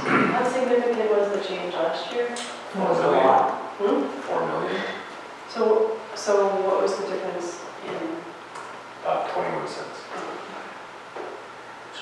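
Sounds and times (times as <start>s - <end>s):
low room hiss: 0.0s - 12.0s
person murmuring: 4.4s - 5.0s.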